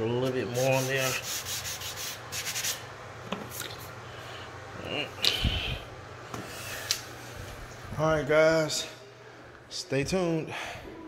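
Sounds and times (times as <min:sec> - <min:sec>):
sanding pad scratching wood: 0:00.4 - 0:02.8.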